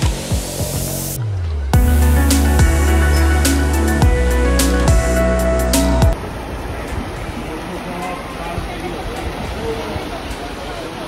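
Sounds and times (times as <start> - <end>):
faint voices: 6.2 - 11.0
stream flowing over stones: 6.2 - 11.0.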